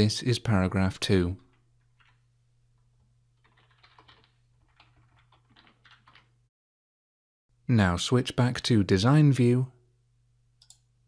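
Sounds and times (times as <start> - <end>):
keyboard typing: 1.5 - 6.4.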